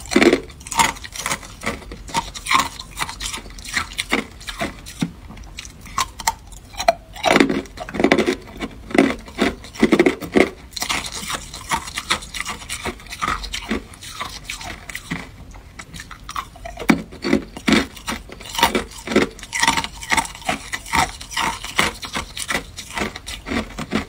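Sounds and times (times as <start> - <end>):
ice being chewed: 0.0 - 24.0.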